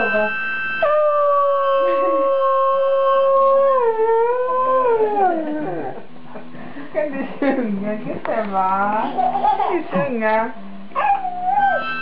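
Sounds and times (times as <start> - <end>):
harmonica chord: 0.0 - 1.0, 11.8 - 12.0
dog howling: 0.8 - 6.0, 11.0 - 12.0.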